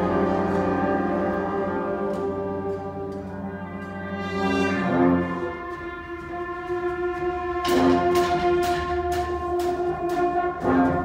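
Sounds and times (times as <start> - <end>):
wind band brass chord: 0.0 - 11.0.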